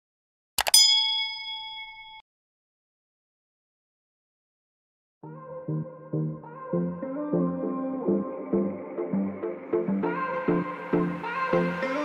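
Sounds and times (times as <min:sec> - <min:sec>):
notification bell ding: 0:00.6 - 0:02.2.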